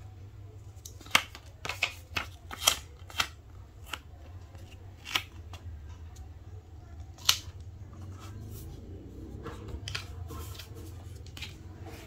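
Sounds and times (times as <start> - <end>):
faint rubbing and rustling: 7.9 - 12.0.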